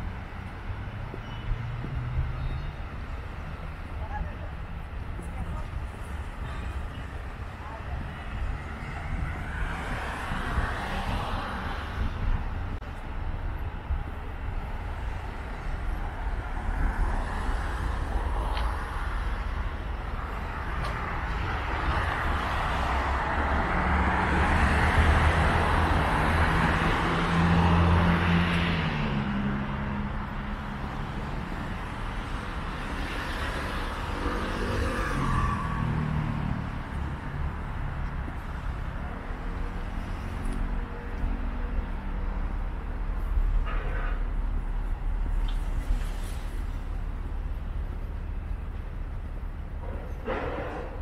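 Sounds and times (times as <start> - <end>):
passing vehicle: 0.0 - 51.0.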